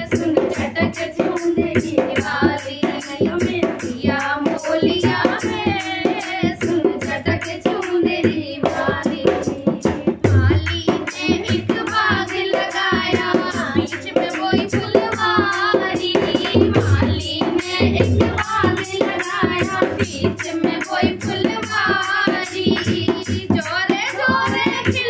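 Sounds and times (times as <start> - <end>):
rhythmic hand clapping: 0.0 - 25.0
women singing folk song together: 0.0 - 25.0.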